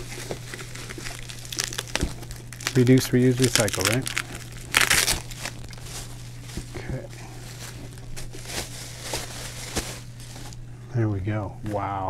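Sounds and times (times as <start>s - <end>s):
bubble wrap crinkling: 0.0s - 10.7s.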